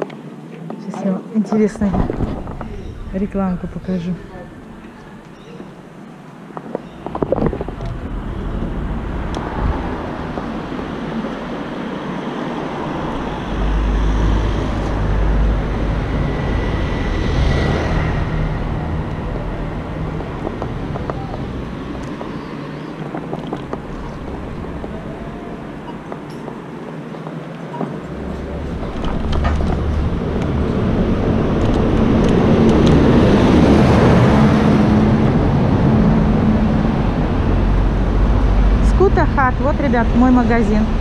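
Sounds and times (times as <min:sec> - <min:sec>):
continuous low rumble: 0:00.0 - 0:12.1, 0:13.1 - 0:41.0
traffic noise: 0:00.0 - 0:41.0
wind buffeting microphone: 0:01.6 - 0:41.0.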